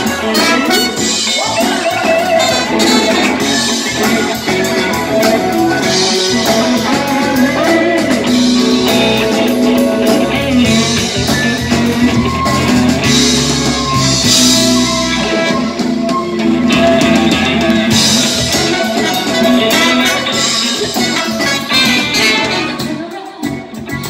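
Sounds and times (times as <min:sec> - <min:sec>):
rock band playing: 0:00.0 - 0:24.0.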